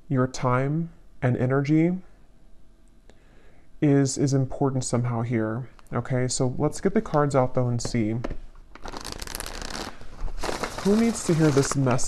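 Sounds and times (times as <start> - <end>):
cards being shuffled: 8.8 - 12.0.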